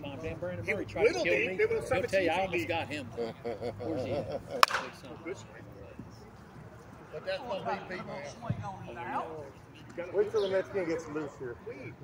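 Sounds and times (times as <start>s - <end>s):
bat hitting ball crack: 4.6s - 5.1s.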